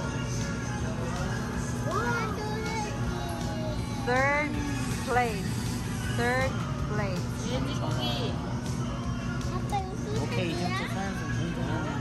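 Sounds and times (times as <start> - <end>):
steady low hum: 0.0 - 12.0
high child's voice: 1.9 - 4.0, 9.5 - 11.0.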